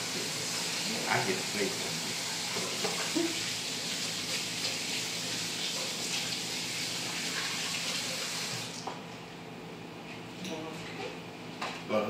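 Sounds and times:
faucet running into steel sink: 0.0 - 8.8.

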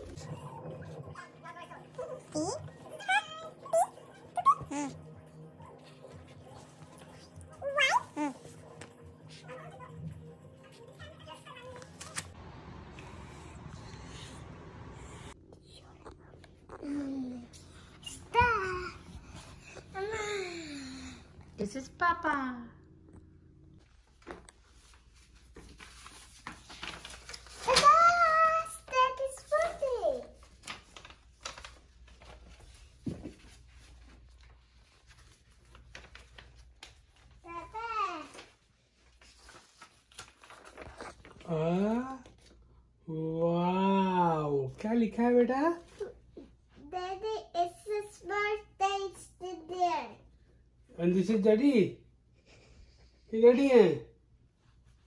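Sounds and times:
steady low hum: 12.4 - 25.5.

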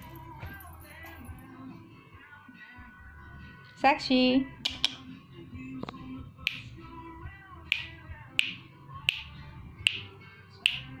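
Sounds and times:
song playing faintly from television: 0.0 - 11.0
hand claps: 6.5 - 6.7, 7.7 - 11.0.

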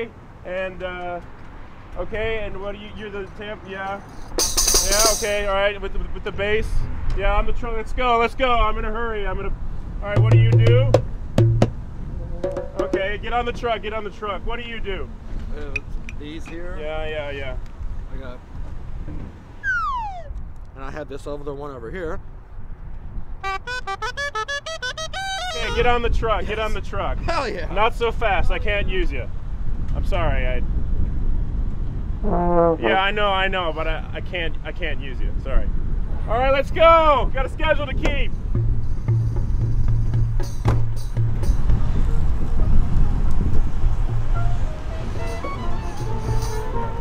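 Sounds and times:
djembe sharp slaps: 10.2 - 11.8
djembe deep stroke: 10.2 - 13.1
trombone note: 12.1 - 13.2, 23.4 - 26.0, 32.2 - 33.1.

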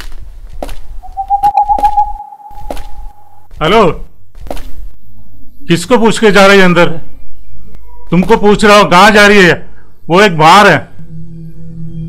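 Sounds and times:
steady high held tone: 1.0 - 3.4.

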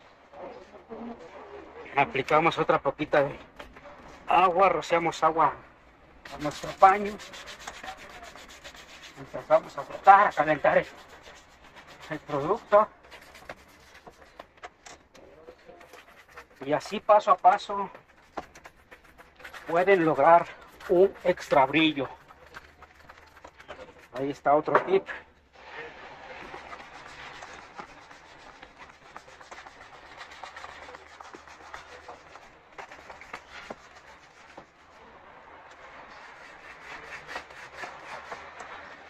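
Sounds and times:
cloth rubbing on leather: 6.3 - 14.6, 15.7 - 24.1, 25.6 - 35.0.

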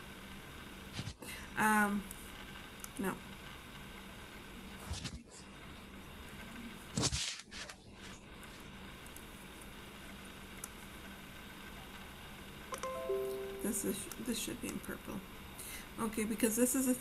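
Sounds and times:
background hiss and hum: 0.0 - 17.0.

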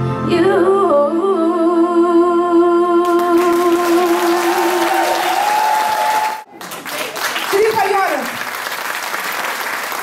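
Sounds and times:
woman singing into a microphone: 0.2 - 5.0
audience applause: 3.1 - 10.0.

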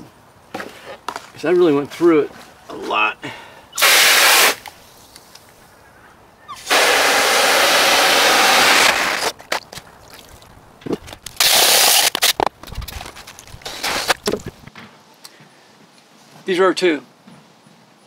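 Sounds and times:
hose water spraying into basin: 3.8 - 4.7, 6.6 - 9.3.

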